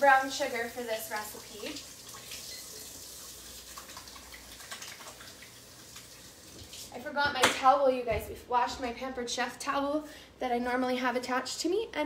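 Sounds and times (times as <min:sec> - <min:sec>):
tap water running: 0:00.0 - 0:07.2
hands washing under water: 0:01.1 - 0:07.0.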